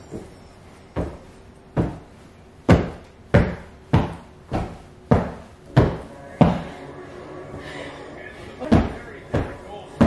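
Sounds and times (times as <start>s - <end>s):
hand thumping sofa cushions: 0.9s - 6.6s, 8.7s - 10.0s.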